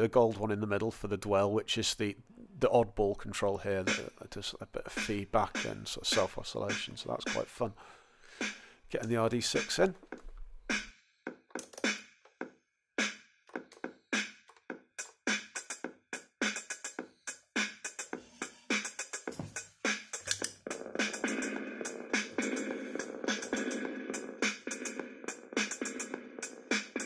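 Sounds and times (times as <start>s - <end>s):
drum machine beat through small amp: 3.9s - 4.2s, 4.9s - 7.6s, 9.6s - 10.9s, 11.5s - 12.1s, 13.0s - 27.0s.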